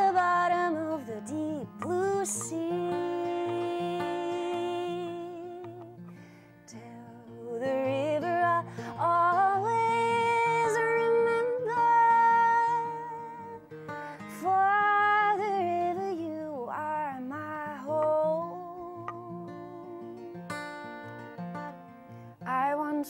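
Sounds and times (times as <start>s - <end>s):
fingerpicked acoustic guitar: 0.0s - 23.0s
woman singing folk song: 0.0s - 23.0s.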